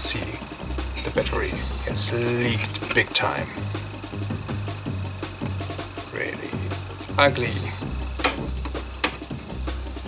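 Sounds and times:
background music with low beat: 0.0s - 10.0s
side cutters snipping: 8.2s - 9.3s.

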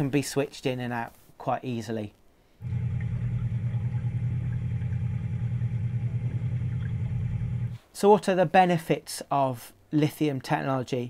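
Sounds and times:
engine idling: 2.6s - 7.8s.

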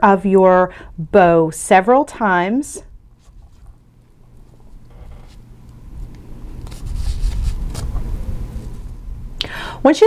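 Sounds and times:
low rumbling handling noise: 2.9s - 9.4s
ribbon rustles: 3.1s - 9.0s.

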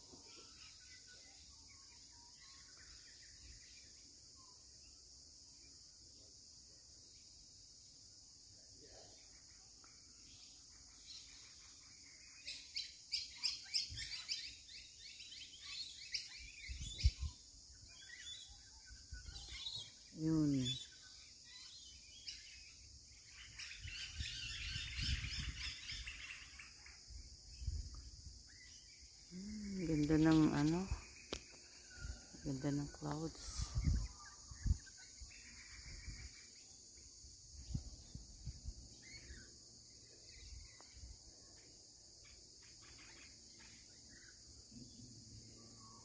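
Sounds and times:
birds chirping and chattering: 0.0s - 4.6s, 8.7s - 46.0s.

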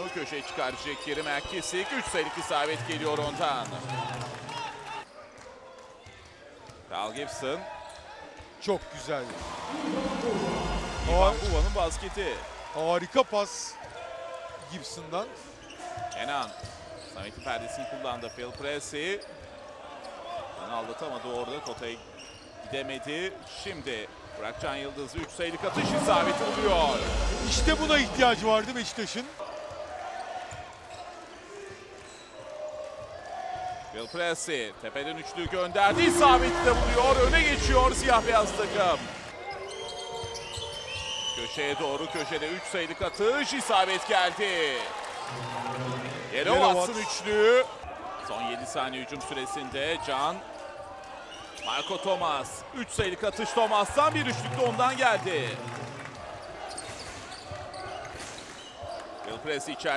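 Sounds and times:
arena crowd noise: 0.0s - 59.9s
crowd murmuring: 9.3s - 12.7s, 25.6s - 28.8s, 35.8s - 39.5s.

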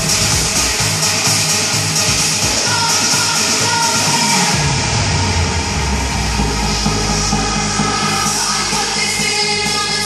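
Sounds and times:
loud electronic dance music: 0.0s - 10.0s
deep sliding bass tone: 4.1s - 10.0s.

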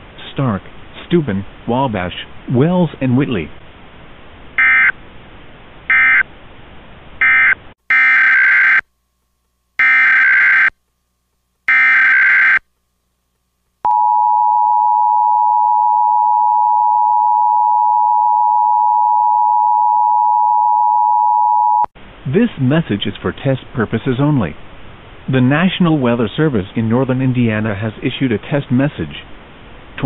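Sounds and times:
emergency attention signal: 7.2s - 8.8s, 9.8s - 10.7s, 11.7s - 12.6s
data tone bursts: 11.7s - 12.6s.

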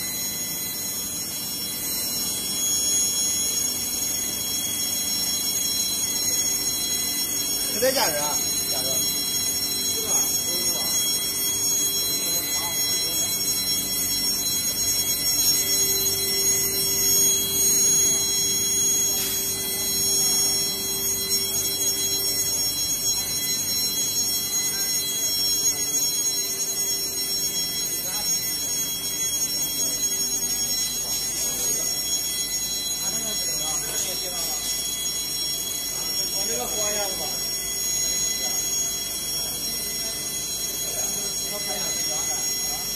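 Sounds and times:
high-pitched whining tones: 0.0s - 42.9s
machine mechanical drone: 0.0s - 42.9s.

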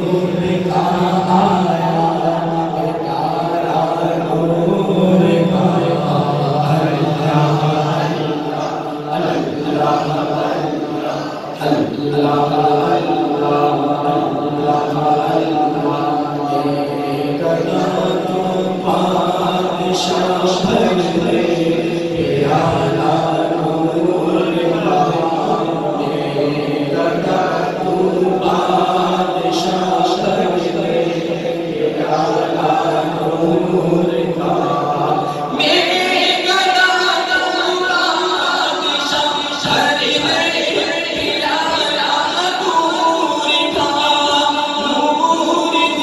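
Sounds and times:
man singing unaccompanied: 0.0s - 46.0s.

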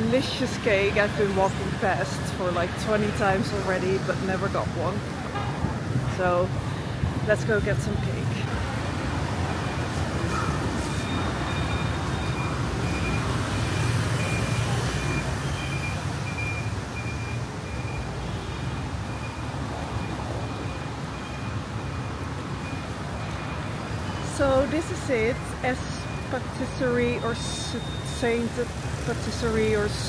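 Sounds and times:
passing vehicles rumble: 0.0s - 30.0s
high electronic beep: 10.4s - 18.1s.

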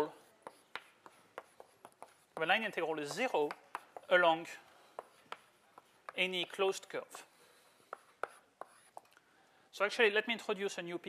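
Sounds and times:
chalk tapping and scratching: 0.0s - 9.2s.

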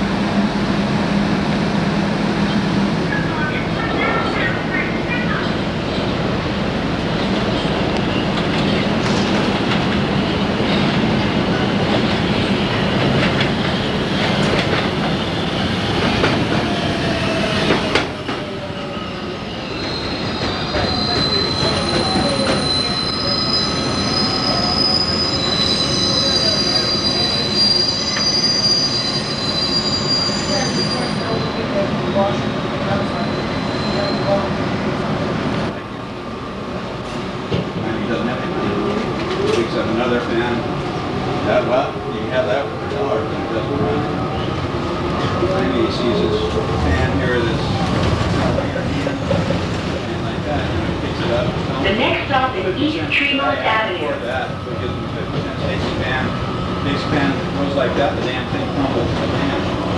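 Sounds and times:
subway train rumbling on rails: 0.0s - 59.9s
high wheel squeals: 18.8s - 34.5s.

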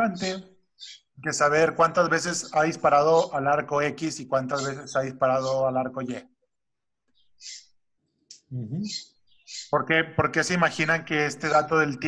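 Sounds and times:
man making a voiced sound: 8.5s - 9.0s.

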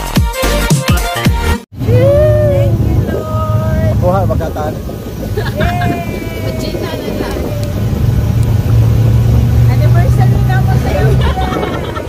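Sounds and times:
vehicle engine droning: 1.7s - 12.0s.

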